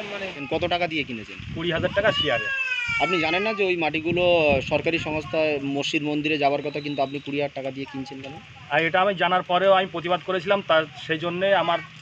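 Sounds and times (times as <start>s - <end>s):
man talking: 0.0s - 11.9s.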